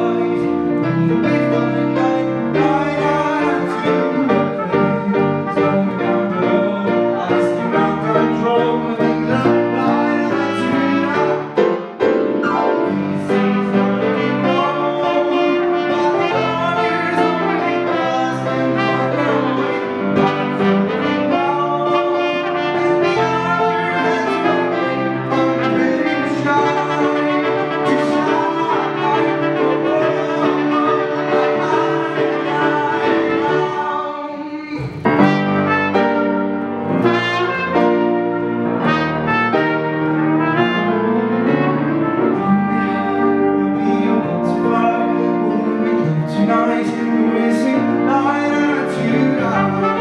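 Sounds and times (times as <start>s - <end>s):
brass lead melody: 0.0s - 50.0s
grand piano: 0.0s - 50.0s.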